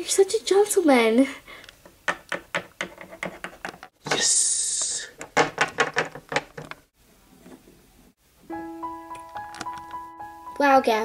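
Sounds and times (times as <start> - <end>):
soft piano-like music: 8.4 - 11.0.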